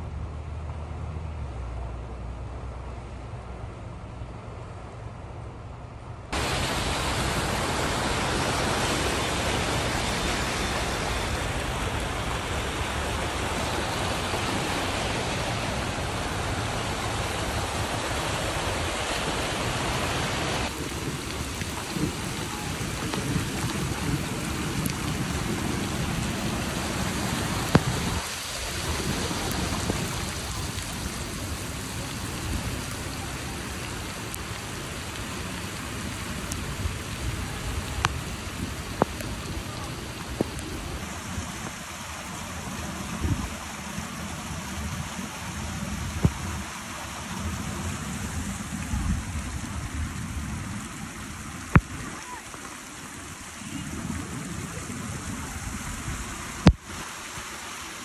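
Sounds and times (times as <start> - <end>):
running floodwater: 0.0 - 58.0
heavy rain: 6.0 - 58.0.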